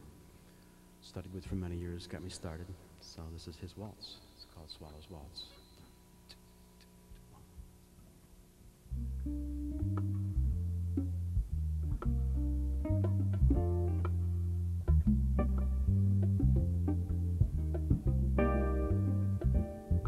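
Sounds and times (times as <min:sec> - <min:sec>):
electric bass low notes: 0:08.9 - 0:20.0
guitar plucking chords: 0:08.9 - 0:20.0.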